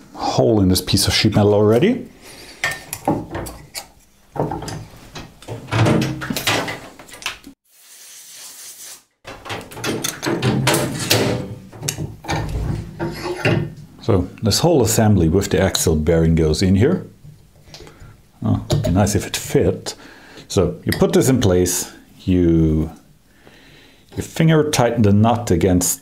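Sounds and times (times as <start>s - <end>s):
metal knocks clicks and scrapes: 2.6s - 7.5s, 9.2s - 13.9s.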